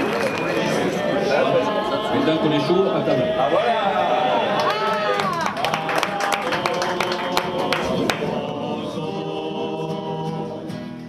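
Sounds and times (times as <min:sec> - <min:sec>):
group singing: 0:00.0 - 0:11.0.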